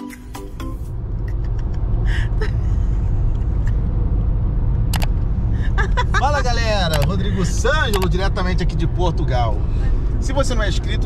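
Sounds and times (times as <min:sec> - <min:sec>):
car engine and road noise: 0:00.0 - 0:11.0
sharp click: 0:04.9 - 0:05.3, 0:06.9 - 0:07.2, 0:07.9 - 0:08.1.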